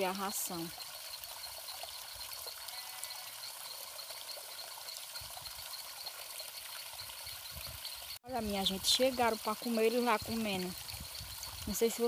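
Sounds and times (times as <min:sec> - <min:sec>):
rapid high chirping: 0:00.0 - 0:12.0.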